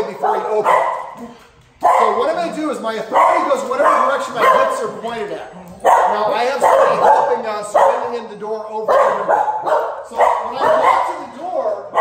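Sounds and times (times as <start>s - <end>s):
dogs barking: 0.0s - 5.2s, 5.8s - 12.0s.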